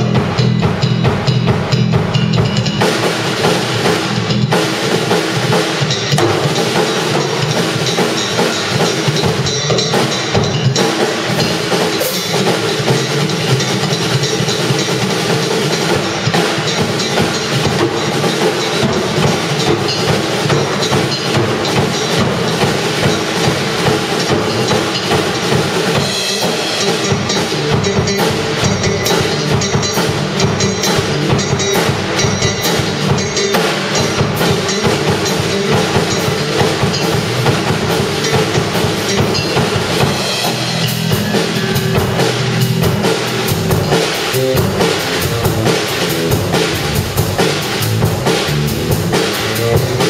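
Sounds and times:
drum kit playing: 0.0s - 50.0s
electric bass playing: 0.0s - 50.0s.

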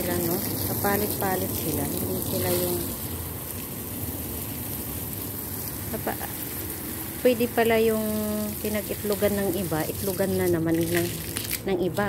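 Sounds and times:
water spraying from a hose: 0.0s - 12.0s.

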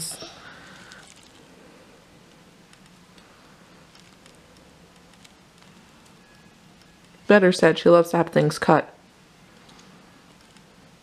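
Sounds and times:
plastic scissors clicking and rustling: 3.9s - 7.2s.

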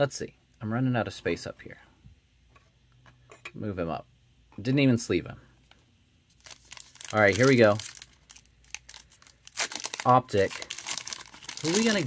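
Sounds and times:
foil card pack crinkling and tearing: 6.3s - 12.0s.

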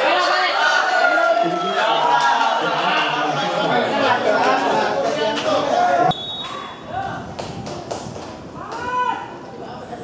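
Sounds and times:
people shouting and calling out: 0.0s - 7.4s, 8.5s - 9.9s.

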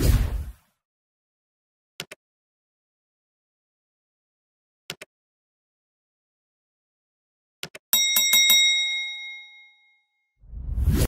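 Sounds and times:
small bell ringing: 8.0s - 10.1s
low rising whoosh: 10.5s - 11.0s.

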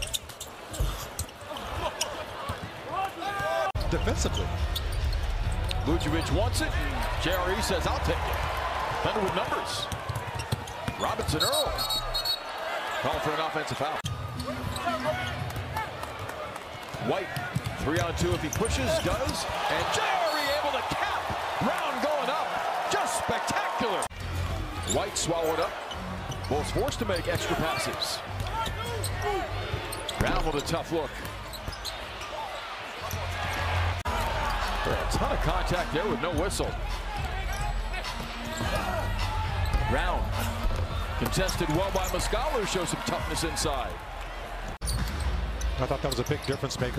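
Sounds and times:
sneakers squeaking: 0.0s - 6.4s, 9.8s - 13.3s, 14.0s - 16.2s, 17.3s - 21.4s, 24.2s - 34.7s, 36.9s - 42.7s, 44.7s - 46.9s
arena crowd hum: 0.0s - 46.9s.

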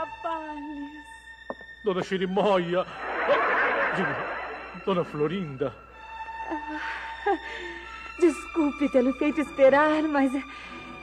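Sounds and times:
audience laughter: 2.8s - 5.0s.

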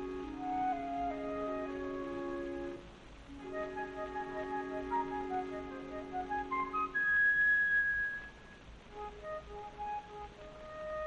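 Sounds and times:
flute high note: 0.0s - 11.0s
record surface hiss: 0.0s - 11.0s.

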